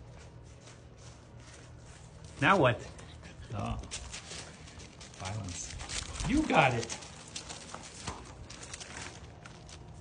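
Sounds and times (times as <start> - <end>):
puppy paws scrambling on gravel: 0.0 - 10.0.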